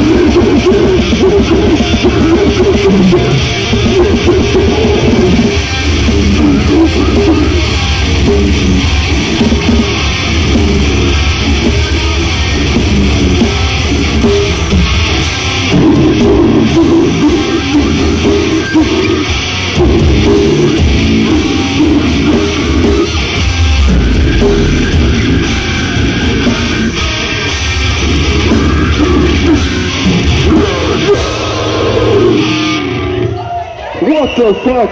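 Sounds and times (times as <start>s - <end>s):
bass guitar: 0.0s - 33.9s
electric guitar: 0.0s - 34.0s
death metal band playing: 0.0s - 34.9s
drums: 0.0s - 34.9s.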